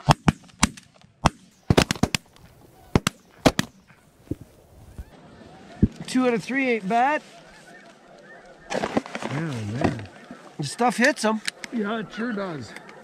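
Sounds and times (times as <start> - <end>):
shotgun blasts: 0.0 - 4.4.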